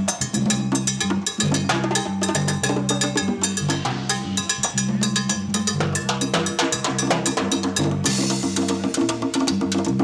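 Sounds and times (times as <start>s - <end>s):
stick hits on timbales: 0.0s - 8.6s.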